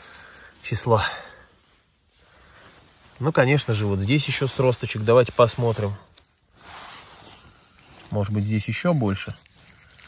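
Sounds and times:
rustling in moss: 0.0 - 10.0.

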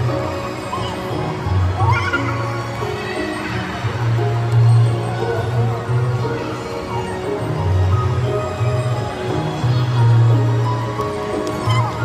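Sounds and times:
rising squeal-like call: 11.6 - 12.0.

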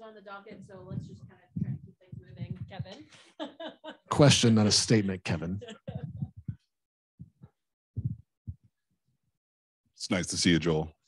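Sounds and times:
microphone handling thumps: 0.5 - 3.0, 5.9 - 6.6, 7.2 - 8.7.

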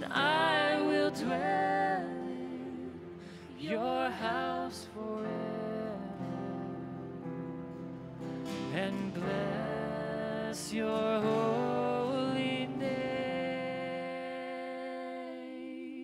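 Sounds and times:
voices singing held notes: 0.0 - 6.2
acoustic guitar strumming: 0.0 - 14.8
keyboard: 0.0 - 16.0.

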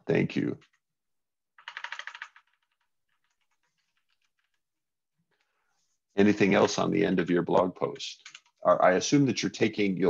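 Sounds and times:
typing on a keyboard: 1.6 - 4.6, 8.2 - 8.6.

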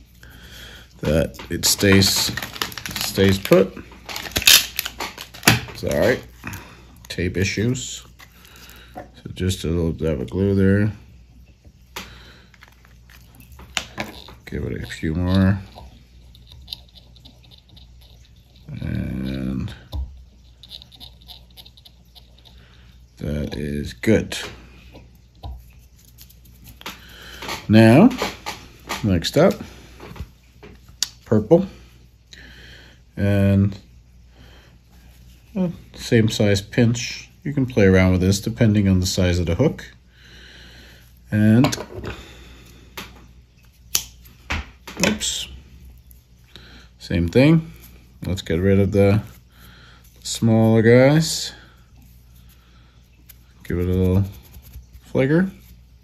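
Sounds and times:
faint room noise: 0.0 - 56.0
steady low hum: 0.0 - 56.0
man's wordless voice: 1.0 - 3.8, 14.4 - 15.7, 18.7 - 20.0, 50.2 - 51.6.

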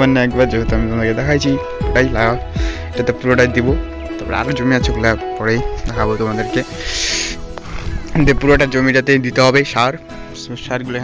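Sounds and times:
man talking: 0.0 - 7.4, 8.1 - 11.0
background music with held tones: 0.0 - 11.0
short hiss: 6.7 - 8.1.

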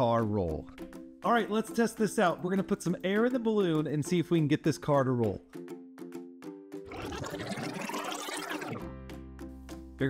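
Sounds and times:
background music: 0.0 - 7.8, 8.4 - 10.0
breath blowing into balloon: 6.9 - 8.9.

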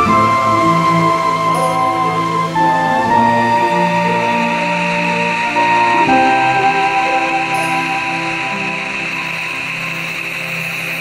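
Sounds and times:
background music: 0.0 - 11.0
waterfall rushing: 0.0 - 11.0.

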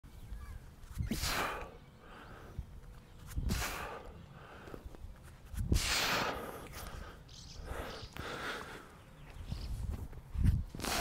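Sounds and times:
man breathing out heavily: 1.1 - 2.7, 3.4 - 5.0, 5.6 - 9.0, 10.8 - 11.0.

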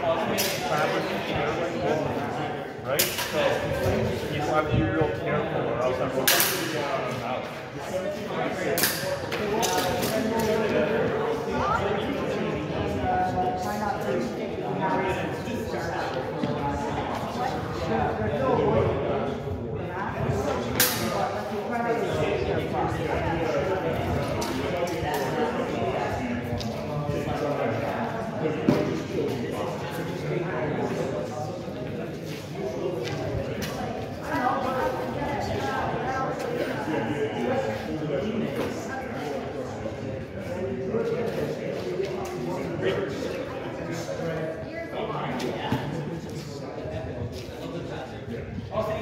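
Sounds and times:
people talking: 0.0 - 49.0.

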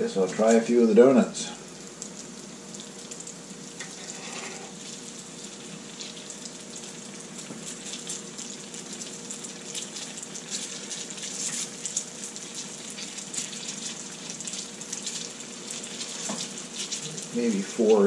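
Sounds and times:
donuts sizzling in hot oil: 0.0 - 18.0.

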